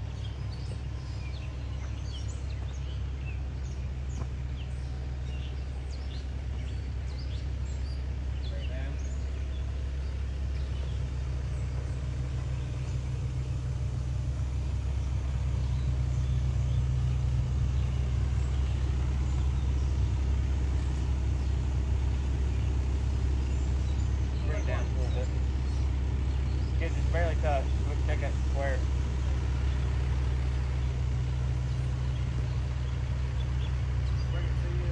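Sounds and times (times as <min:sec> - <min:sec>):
diesel engine droning: 0:00.0 - 0:34.9
voices: 0:00.0 - 0:34.9.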